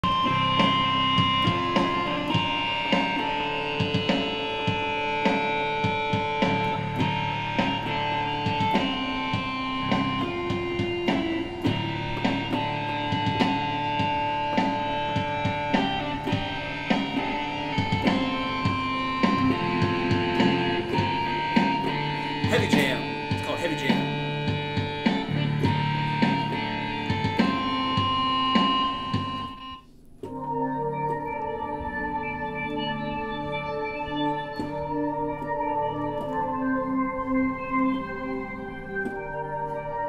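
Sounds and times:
steady drum beat: 0:00.0 - 0:29.6
electronic keyboard held notes: 0:00.0 - 0:40.0.

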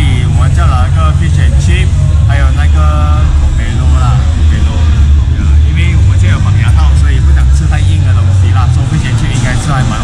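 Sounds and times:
loud low rumble: 0:00.0 - 0:10.0
man talking: 0:00.0 - 0:10.0.

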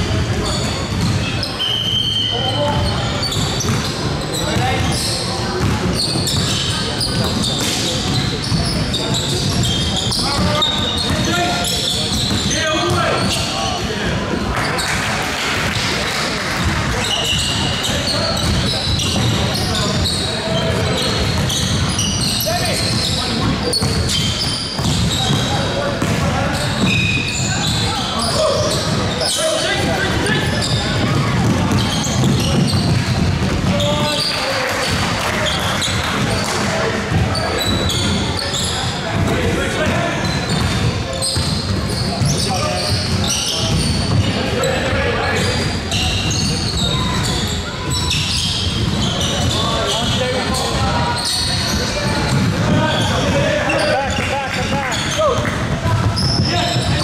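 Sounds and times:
sneakers squeaking: 0:00.0 - 0:57.0
basketball bouncing: 0:00.2 - 0:01.3, 0:02.7 - 0:05.0, 0:05.6 - 0:06.6, 0:18.4 - 0:20.1, 0:20.7 - 0:27.0, 0:29.8 - 0:38.2, 0:39.1 - 0:44.4, 0:48.5 - 0:50.2, 0:51.7 - 0:53.4.

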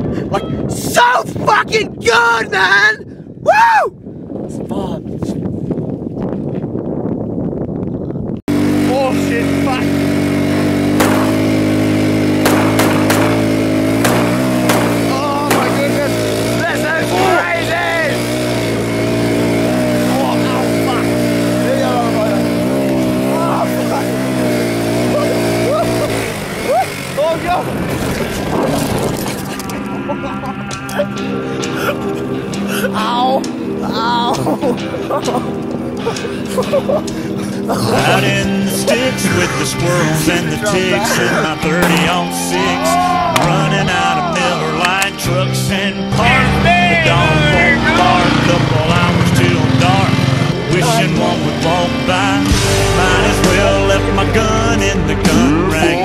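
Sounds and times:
quad bike engine buzzing: 0:08.5 - 0:44.2, 0:45.7 - 0:56.0
voices calling out: 0:08.9 - 0:28.0, 0:29.4 - 0:56.0.

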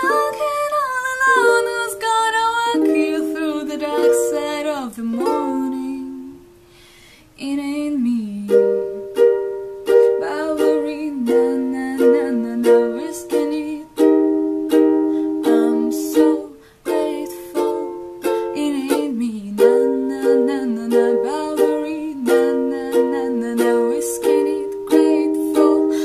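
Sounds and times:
ukulele strumming: 0:00.0 - 0:06.6, 0:07.5 - 0:26.0.

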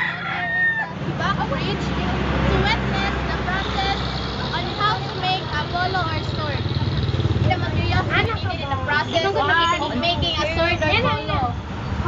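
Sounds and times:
indistinct voices talking: 0:00.0 - 0:12.0
vehicle engine rumble: 0:00.0 - 0:12.0.

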